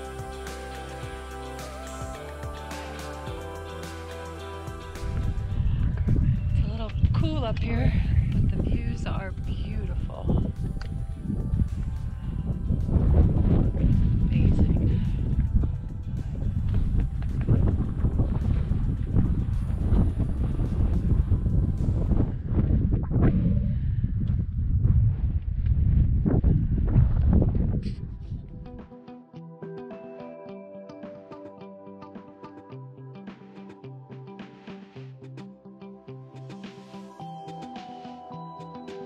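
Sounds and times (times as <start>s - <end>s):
wind buffeting microphone: 5.0s - 28.8s.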